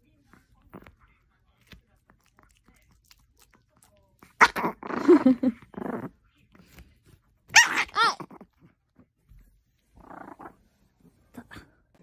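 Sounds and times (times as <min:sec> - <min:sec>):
dog growling: 0:04.4 - 0:06.2, 0:07.6 - 0:08.7, 0:10.0 - 0:10.7
small dog barking: 0:07.5 - 0:08.3.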